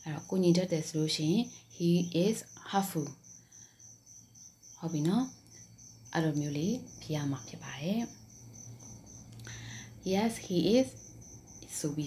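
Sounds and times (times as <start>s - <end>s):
insect chirping: 0.0s - 12.0s.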